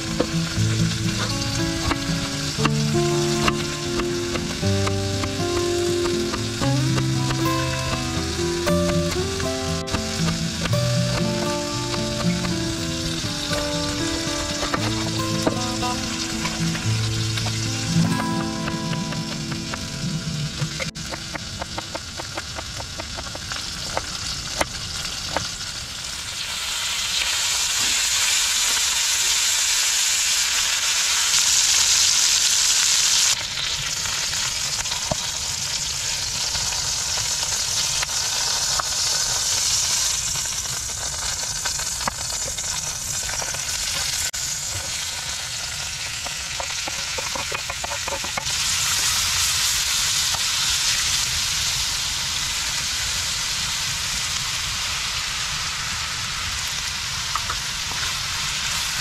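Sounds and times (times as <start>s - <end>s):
food sizzling in hot oil: 0.0s - 59.0s.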